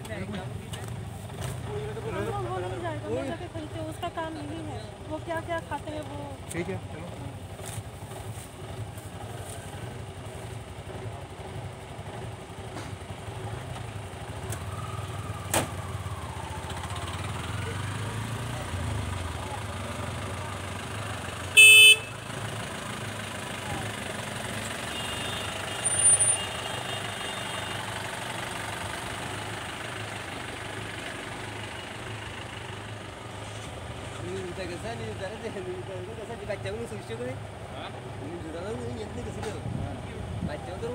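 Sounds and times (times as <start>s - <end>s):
vehicle engine idling: 0.0s - 40.9s
short loud horn toot: 21.6s - 22.1s.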